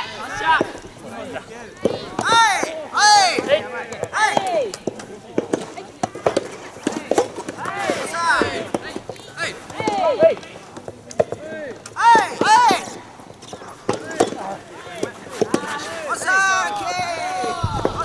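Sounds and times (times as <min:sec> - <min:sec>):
players shouting calls: 0:00.0 - 0:18.0.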